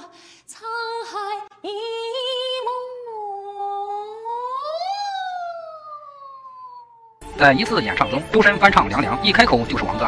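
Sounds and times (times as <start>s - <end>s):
man singing a cappella: 7.3s - 10.0s.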